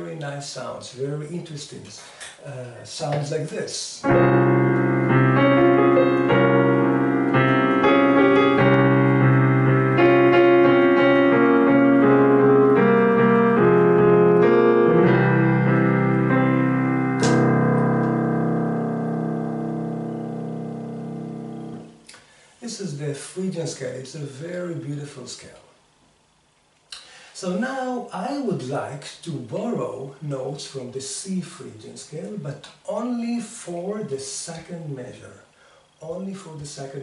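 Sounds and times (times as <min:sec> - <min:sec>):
piano improvising: 0:04.0 - 0:22.1.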